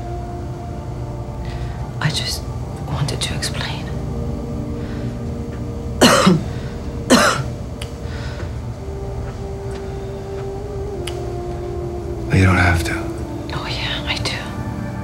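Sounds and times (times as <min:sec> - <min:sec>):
steady low hum: 0:00.0 - 0:15.0
harsh coughs: 0:06.0 - 0:06.5, 0:07.1 - 0:07.5.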